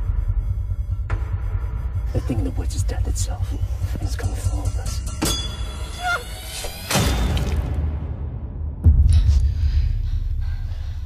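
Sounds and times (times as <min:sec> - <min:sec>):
deep steady rumble: 0:00.0 - 0:06.5
metallic ringing screech: 0:05.3 - 0:06.7
falling squeal: 0:05.8 - 0:06.7.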